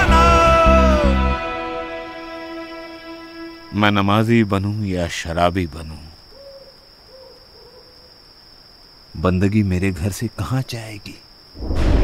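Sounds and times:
insects droning: 0.0s - 12.0s
soft hoots: 6.3s - 8.1s.

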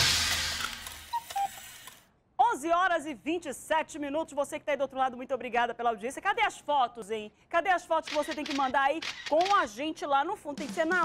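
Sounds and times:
short electronic beeps: 1.1s - 1.8s
woman speaking: 2.4s - 11.0s
television music and sound effects: 10.5s - 11.0s.

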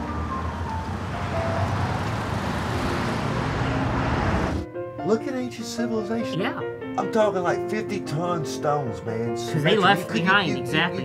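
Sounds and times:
car passing: 0.0s - 4.7s
faint music: 5.0s - 11.0s.

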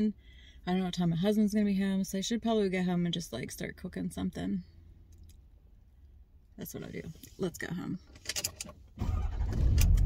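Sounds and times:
truck engine starting and rumbling: 8.9s - 10.0s.

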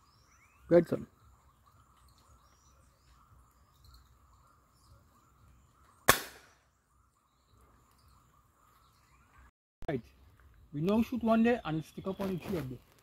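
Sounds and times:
air rifle shot: 6.1s - 6.6s.

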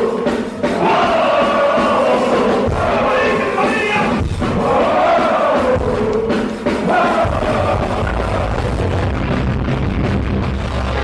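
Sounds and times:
voices singing together: 0.0s - 8.9s
punk rock band playing: 0.0s - 11.0s.

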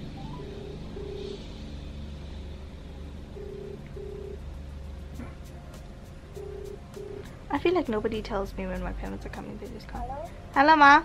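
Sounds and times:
telephone ringback tone: 0.2s - 1.4s, 3.3s - 4.4s, 6.4s - 7.3s.

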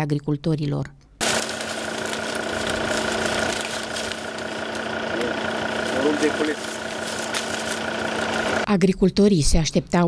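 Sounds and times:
constant hiss: 1.2s - 8.6s
engine-like hum: 1.2s - 8.7s
faint crackles: 1.2s - 8.7s.

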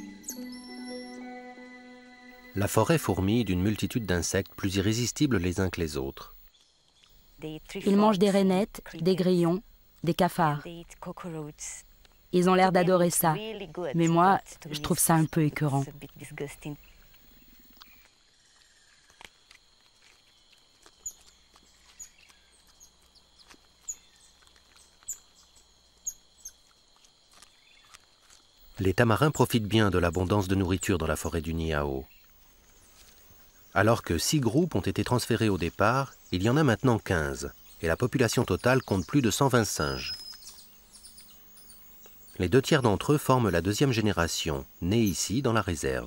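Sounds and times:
high insect hum: 0.0s - 46.0s
quiet rainforest ambience: 0.0s - 46.0s.

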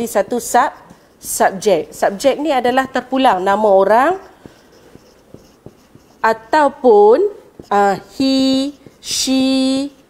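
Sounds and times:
marker pen writing on whiteboard: 0.0s - 10.0s.

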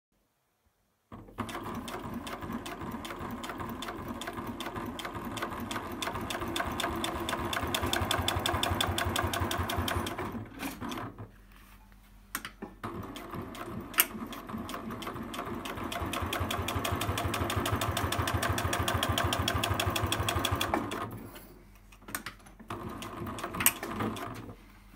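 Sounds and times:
sewing machine stitching leather: 1.1s - 11.2s, 12.8s - 21.2s, 22.5s - 24.6s.

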